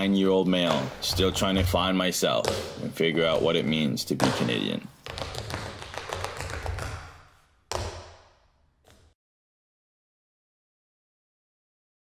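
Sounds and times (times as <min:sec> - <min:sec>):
tap shoes on wooden floor: 0:00.6 - 0:09.1.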